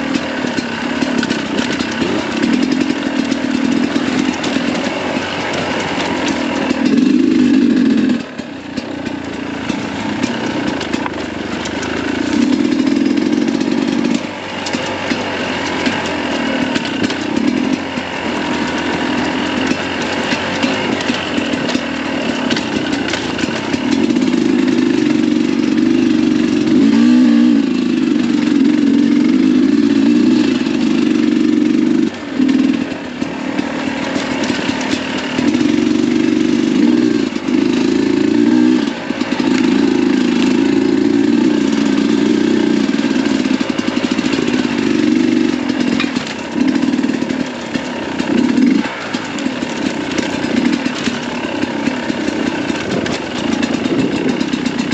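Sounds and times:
two-stroke motorcycle engine revving: 0.0 - 54.9.

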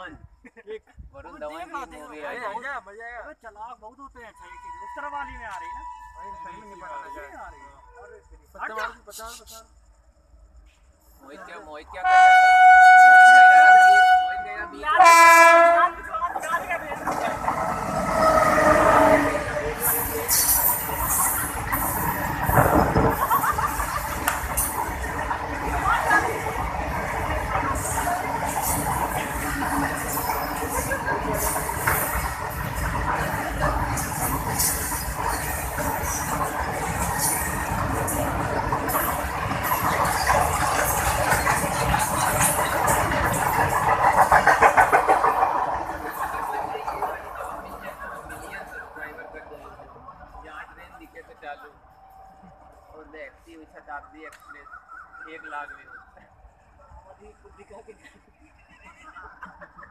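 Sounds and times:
locomotive whine: 4.4 - 8.4, 12.0 - 55.2
locomotive air horn: 4.5 - 8.0, 12.0 - 16.0
freight train rumbling past: 11.2 - 54.4
freight wagons clattering: 27.2 - 48.7.

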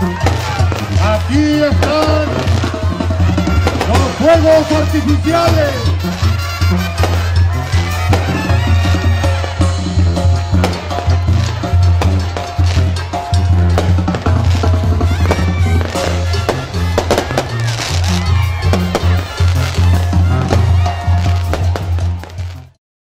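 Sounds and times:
fireworks crackling pops: 0.0 - 2.8, 3.4 - 4.7, 6.9 - 7.3, 8.1 - 8.5, 10.6 - 13.0, 13.8 - 22.8
loud music with heavy bass: 0.0 - 22.8.

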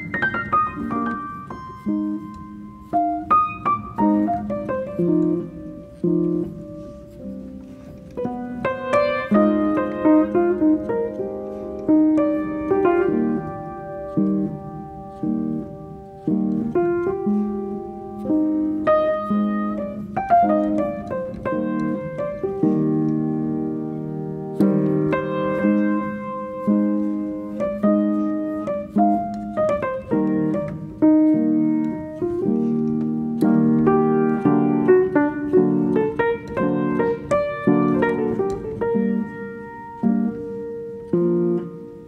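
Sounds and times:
piano music: 0.0 - 42.0.

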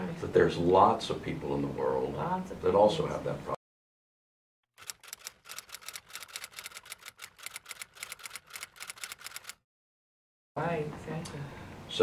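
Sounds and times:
rapid mechanical clicking: 4.8 - 9.6.

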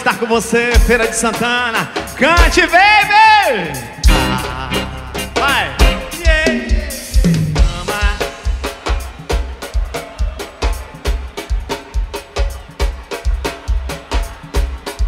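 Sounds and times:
live band music: 0.0 - 15.0
bass drum beat: 0.8 - 15.0.

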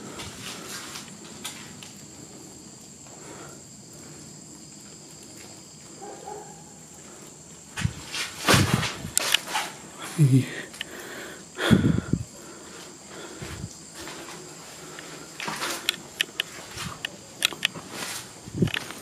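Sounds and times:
footsteps on concrete stairs: 12.7 - 19.0.

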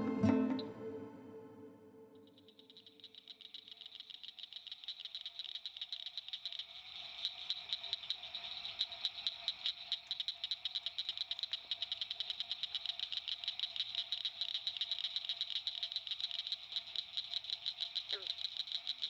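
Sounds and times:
low steady animal calls: 2.2 - 19.0
rapid high animal clicks: 2.2 - 19.0.

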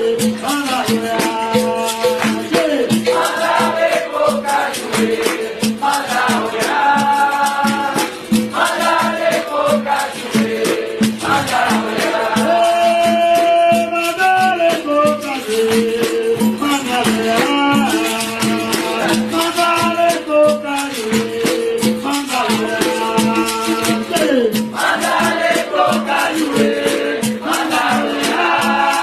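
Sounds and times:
people singing: 0.0 - 29.0
percussion beat: 0.0 - 29.0
shaken rattle: 0.0 - 29.0.

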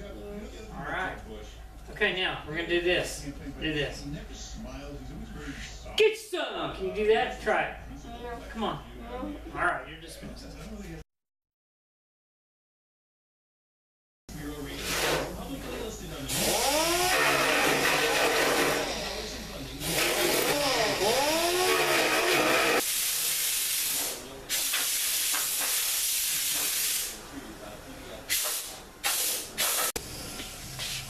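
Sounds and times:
compressed air hissing: 22.8 - 27.2, 28.3 - 31.0.

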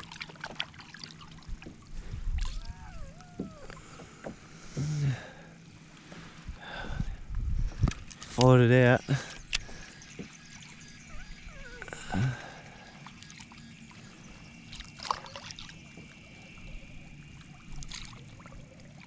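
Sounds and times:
faint water movement: 0.0 - 19.0
man humming or groaning: 4.7 - 5.5, 11.8 - 12.8.

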